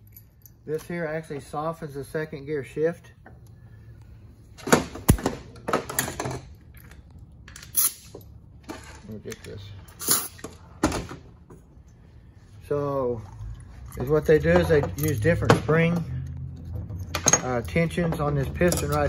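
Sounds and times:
metal parts clicking on workbench: 0:16.9 - 0:19.0.

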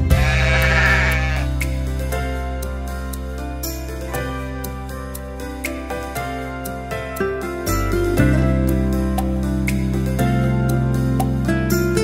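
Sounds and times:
soft music with held chords: 0:00.0 - 0:12.0
cartoon sheep bleating: 0:00.1 - 0:01.6.

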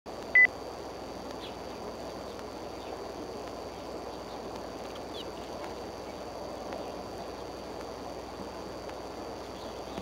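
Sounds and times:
faint high whine: 0:00.1 - 0:10.0
microphone background hiss: 0:00.1 - 0:10.0.

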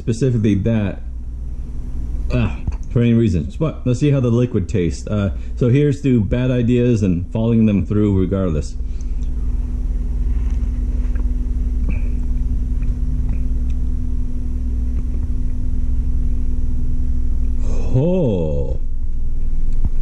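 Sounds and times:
low rumble with hum: 0:00.0 - 0:20.0
man's pitch-bending vocal sound: 0:17.6 - 0:18.9.

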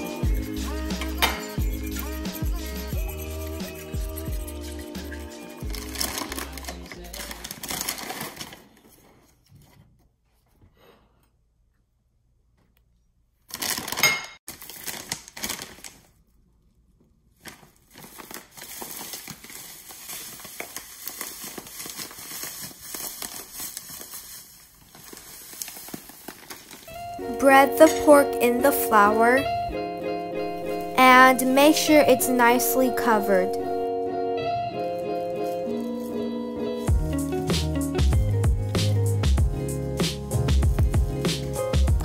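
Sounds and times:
background music with a beat: 0:00.0 - 0:07.0, 0:33.5 - 0:42.0
plastic bag crinkling: 0:05.6 - 0:09.1, 0:13.5 - 0:29.3, 0:34.9 - 0:36.9.

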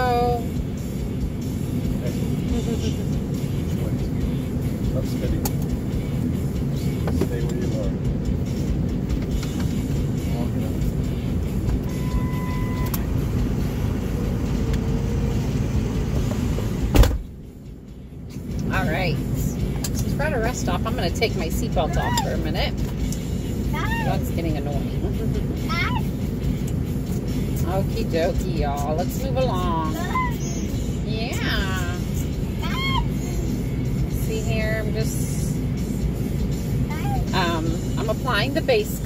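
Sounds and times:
car cabin hum: 0:00.0 - 0:39.0.

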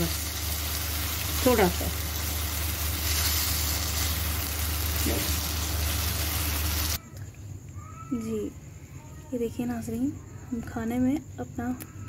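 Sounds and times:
chicken sizzling in oil: 0:00.0 - 0:07.0.

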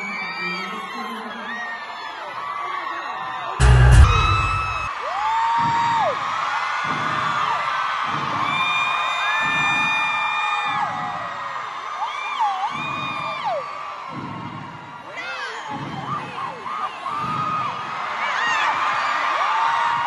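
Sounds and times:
fans screaming whoops: 0:00.0 - 0:20.0
amplified pop music with bass beat: 0:03.6 - 0:04.9
loud boom: 0:03.6 - 0:04.9.

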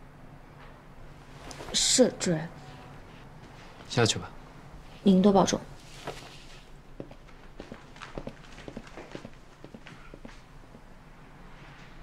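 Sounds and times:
footsteps on hard floor: 0:06.0 - 0:10.9.

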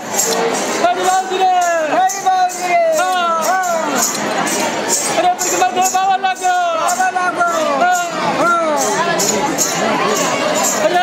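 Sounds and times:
person singing folk chant: 0:05.1 - 0:11.0.

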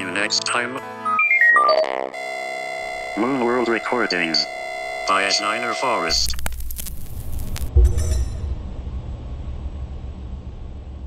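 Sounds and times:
low rumble: 0:06.1 - 0:11.0.

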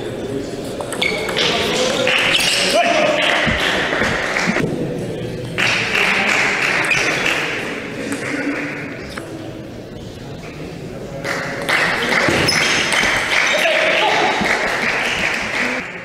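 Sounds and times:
crowd shouting and cheering: 0:01.0 - 0:09.2, 0:11.3 - 0:16.0.

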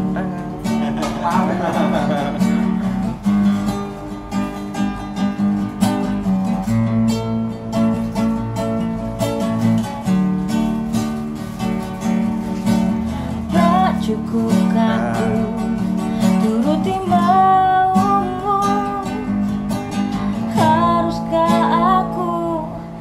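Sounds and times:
acoustic guitar strumming chords: 0:00.0 - 0:23.0.

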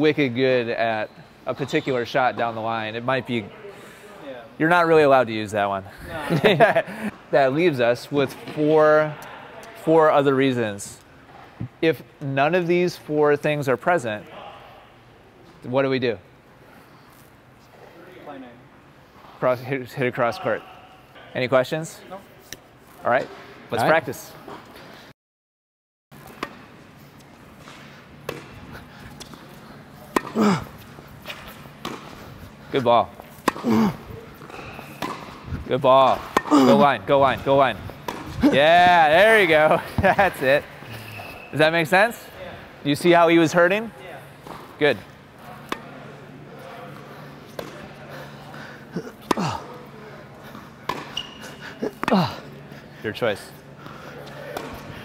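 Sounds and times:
shoe squeaking on hard court: 0:00.8 - 0:02.8, 0:26.2 - 0:32.3, 0:33.2 - 0:39.0, 0:40.0 - 0:41.8, 0:50.5 - 0:52.2
racquet hitting tennis ball: 0:26.2 - 0:26.7, 0:27.6 - 0:29.4, 0:30.0 - 0:32.2, 0:33.3 - 0:40.4, 0:47.5 - 0:47.9, 0:50.8 - 0:51.4, 0:54.5 - 0:55.0
person exclaiming: 0:36.5 - 0:37.0.

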